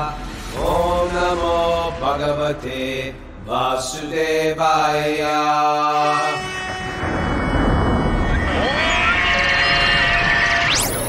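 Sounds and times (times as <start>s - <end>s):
loud rushing noise: 0.0s - 3.8s
high held tone: 6.0s - 11.0s
electronic tones: 6.2s - 11.0s.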